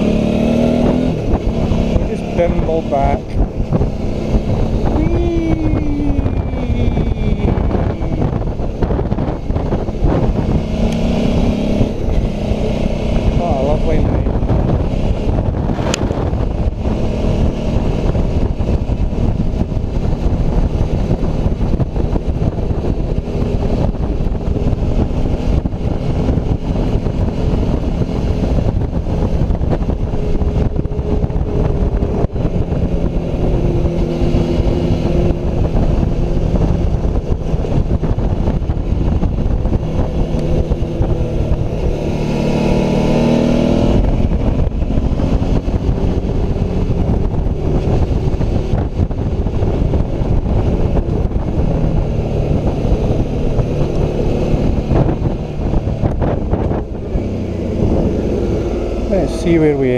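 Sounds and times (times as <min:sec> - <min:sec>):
motorcycle engine running: 0:00.0 - 0:59.9
wind rushing over microphone: 0:00.0 - 0:59.9.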